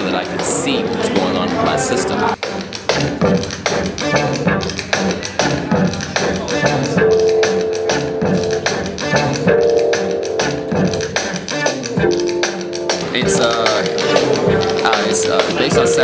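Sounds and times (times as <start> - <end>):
electronic drum beat: 2.3 - 16.0.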